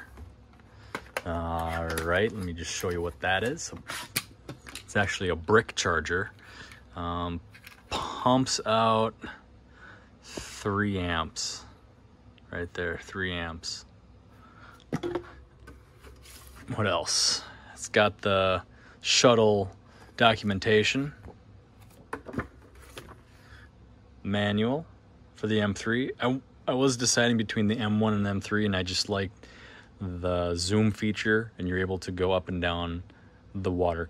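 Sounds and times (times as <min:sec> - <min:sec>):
plastic handling noise: 0:00.0 - 0:05.0, 0:21.2 - 0:23.3.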